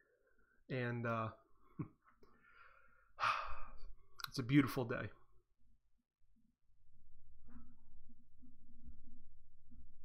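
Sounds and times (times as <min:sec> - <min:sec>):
faint breath: 0:02.2 - 0:04.0
man sighing: 0:03.2 - 0:03.9.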